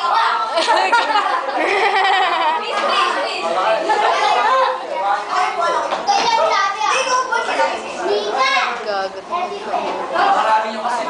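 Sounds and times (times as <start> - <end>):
students chattering in classroom: 0.0 - 11.0.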